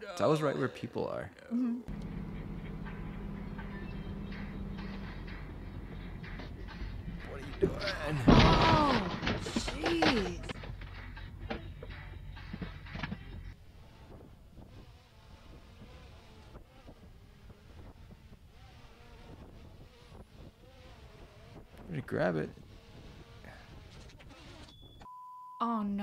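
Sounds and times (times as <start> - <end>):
faint wavering hum: 1.8 - 8.3
car engine and road noise: 1.9 - 8.4.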